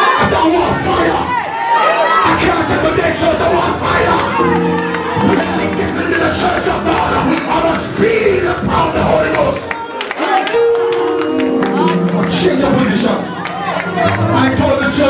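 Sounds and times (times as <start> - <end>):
congregation shouting and praising: 0.0 - 15.0
held keyboard chords: 2.2 - 15.0.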